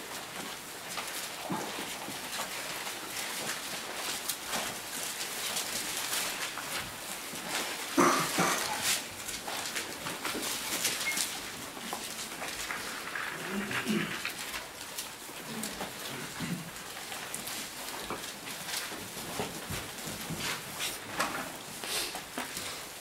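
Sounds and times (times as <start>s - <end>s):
book pages rustling: 0.0s - 23.0s
room noise: 0.0s - 23.0s.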